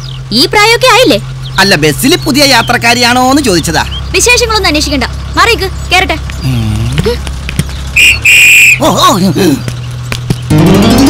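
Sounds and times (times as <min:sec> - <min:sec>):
whistle blasts: 0:08.0 - 0:08.8.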